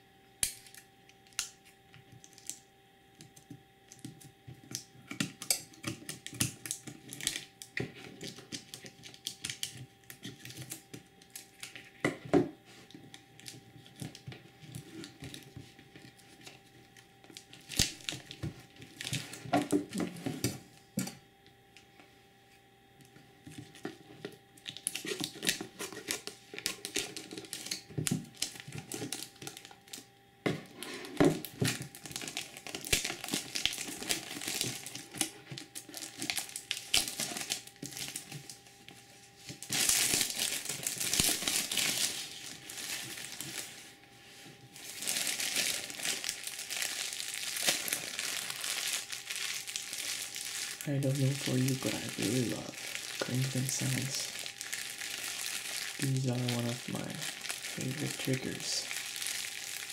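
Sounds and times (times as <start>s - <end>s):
plastic shrink wrap crinkling and tearing: 2.2s - 2.6s, 3.9s - 12.0s, 13.3s - 20.3s, 24.6s - 30.1s, 30.7s - 44.0s, 44.6s - 59.9s.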